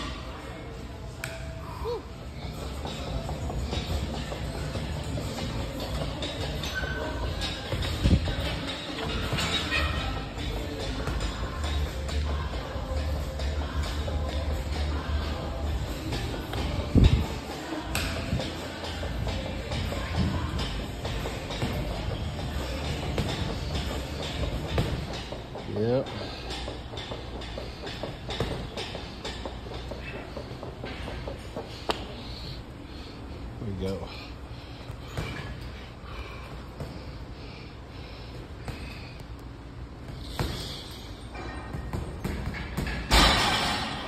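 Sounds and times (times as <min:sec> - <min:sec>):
background music: 0:00.0 - 0:31.6.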